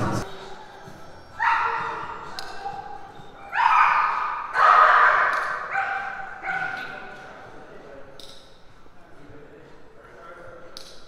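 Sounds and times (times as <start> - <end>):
dog barking with echo: 3.6 - 6.8.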